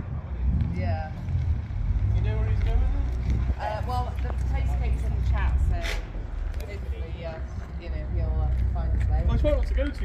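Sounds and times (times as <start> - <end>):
people chatting: 0.0 - 1.4, 2.0 - 10.0
steady low rumble: 0.0 - 10.0.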